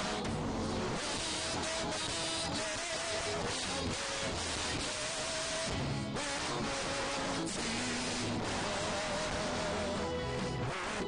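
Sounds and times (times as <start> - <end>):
group singing worship songs: 0.0 - 11.0.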